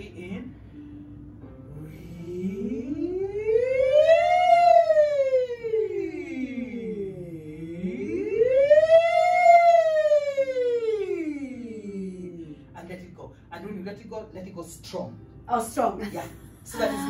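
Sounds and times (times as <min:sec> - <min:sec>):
woman singing vocal siren: 0:02.0 - 0:04.9, 0:05.6 - 0:12.1.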